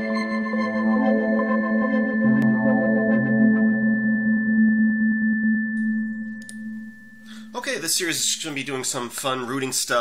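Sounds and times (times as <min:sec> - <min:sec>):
synthesized organ-like chord: 0:00.0 - 0:08.6.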